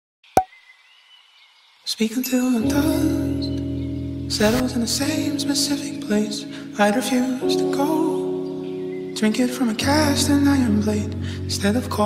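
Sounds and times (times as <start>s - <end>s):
music: 2.2s - 12.0s.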